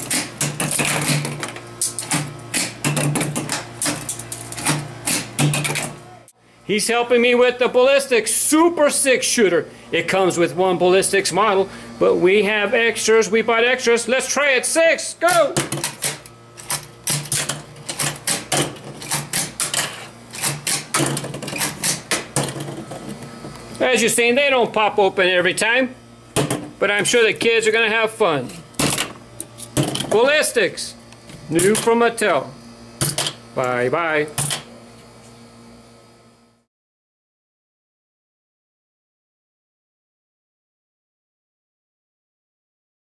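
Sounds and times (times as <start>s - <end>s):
air conditioner humming: 0.0s - 36.7s.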